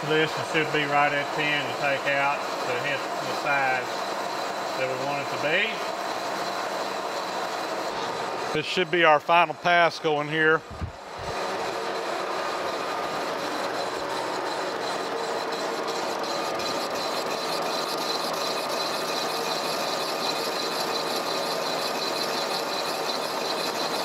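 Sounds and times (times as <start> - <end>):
boring mill cutting metal: 0.0 - 24.0.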